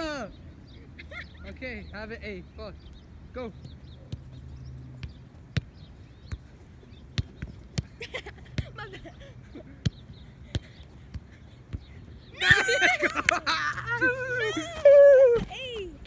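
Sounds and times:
people laughing: 8.0s - 9.8s, 12.4s - 15.4s.

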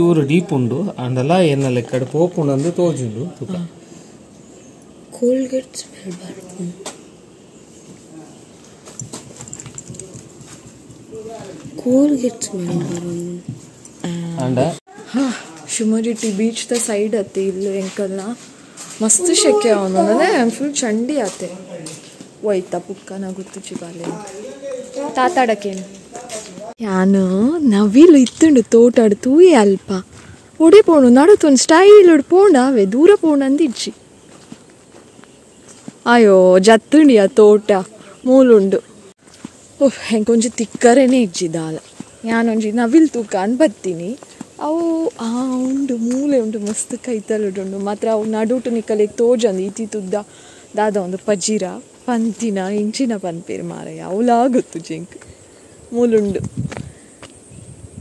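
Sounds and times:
footsteps on leafy soil: 15.3s - 26.8s, 27.9s - 36.4s, 39.2s - 55.3s.

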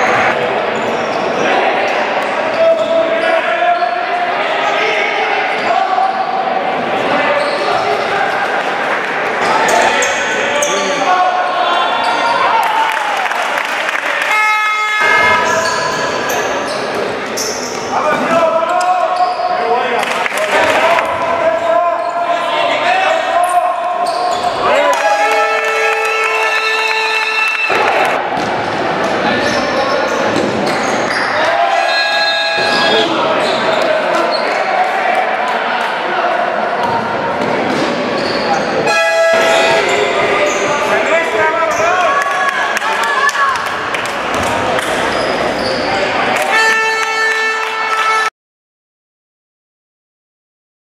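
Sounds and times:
basketball bouncing on court: 28.4s - 28.8s
players shouting: 31.1s - 37.3s.

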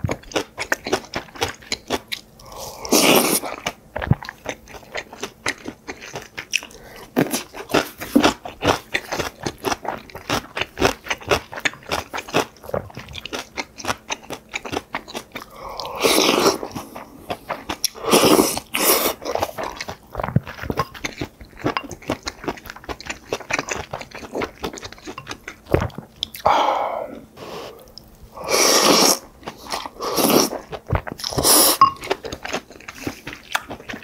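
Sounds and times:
person chewing and crunching: 0.0s - 34.0s
spoon scraping ceramic bowl: 31.7s - 32.1s.

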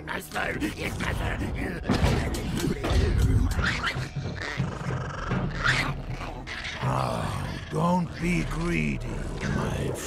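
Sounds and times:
film score music: 0.0s - 10.0s
snarling growling creature voices: 0.1s - 10.0s.

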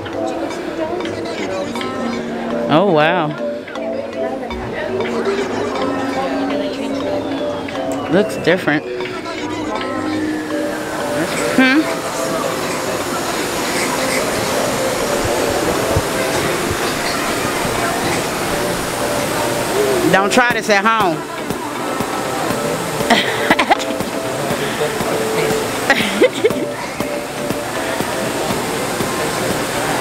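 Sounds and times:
distant crowd chatter: 0.0s - 30.0s
faint music: 0.0s - 30.0s
steady rushing noise: 9.7s - 30.0s.

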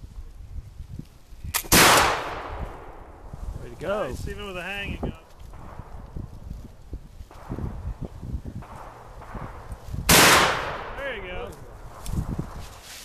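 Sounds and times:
gunshot: 1.6s - 2.9s, 8.6s - 11.0s.

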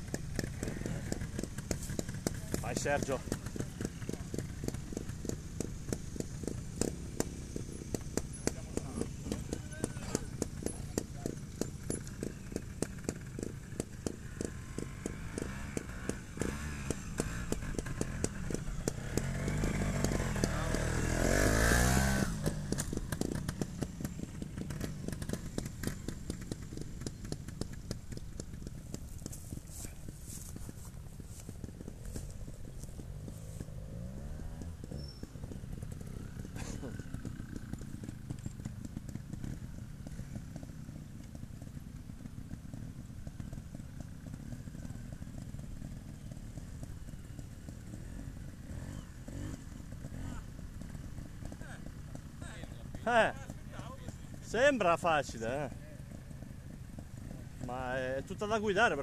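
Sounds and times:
motorcycle exhaust popping: 0.0s - 59.0s.

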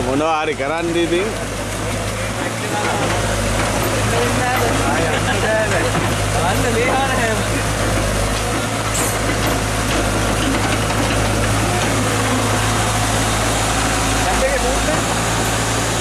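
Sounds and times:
excavator diesel engine running: 0.0s - 16.0s.

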